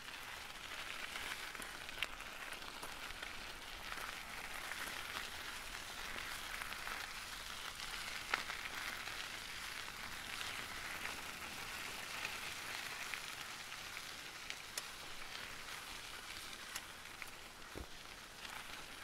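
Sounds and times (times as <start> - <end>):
bike tyres rolling on tarmac: 0.0 - 19.0.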